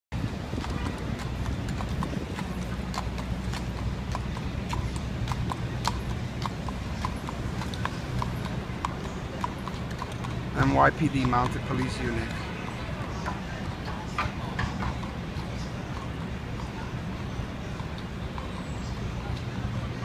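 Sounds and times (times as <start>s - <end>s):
low rumble of city traffic: 0.1s - 20.0s
horse hooves on asphalt: 0.2s - 20.0s.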